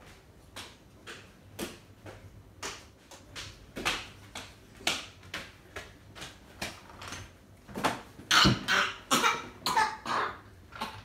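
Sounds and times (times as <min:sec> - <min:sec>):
child coughing: 0:08.3 - 0:11.0.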